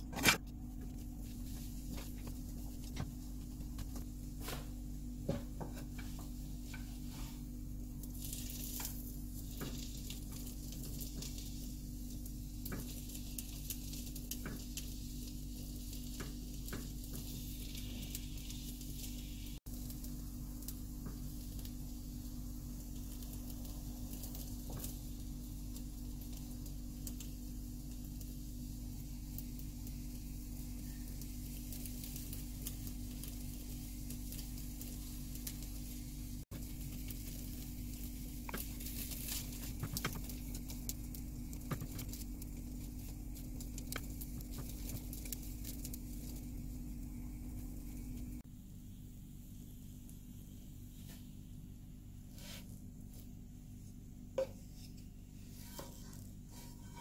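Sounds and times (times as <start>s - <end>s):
egg sizzling in oil: 0.8s - 57.0s.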